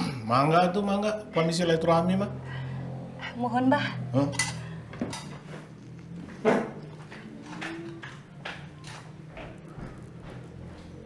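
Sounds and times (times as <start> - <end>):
dishes and cutlery clinking: 4.2 - 5.8, 6.4 - 9.7.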